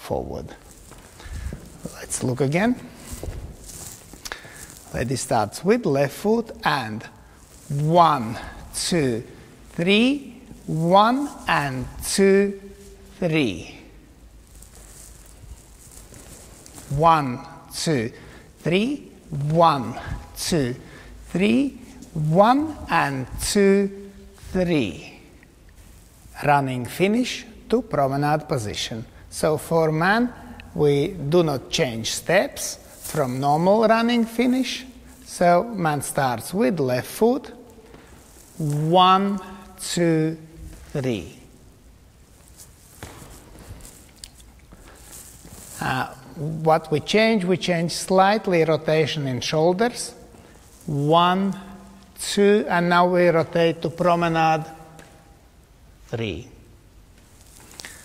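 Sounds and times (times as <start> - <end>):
shoes scuffing on parquet floor: 0.6 - 5.6, 40.6 - 46.4
dance shoes stepping on parquet: 42.2 - 46.4.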